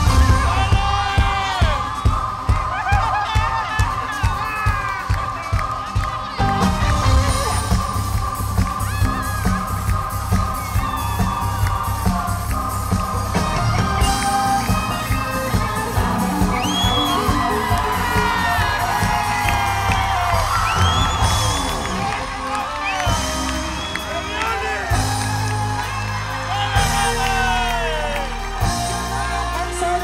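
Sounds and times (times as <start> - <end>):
crowd cheering and whooping: 0.0 - 30.0
live pop band playing: 0.0 - 30.0.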